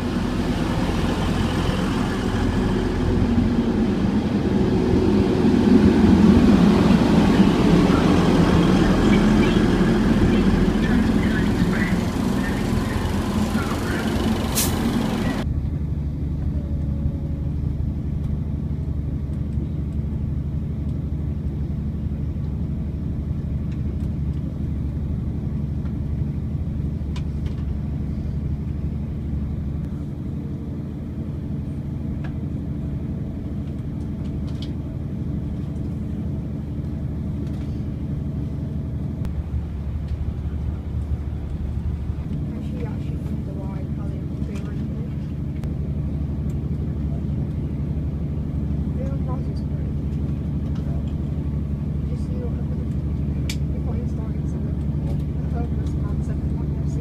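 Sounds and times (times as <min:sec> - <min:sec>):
diesel train engine: 0:00.0 - 0:57.0
low engine drone and rumble: 0:00.0 - 0:57.0.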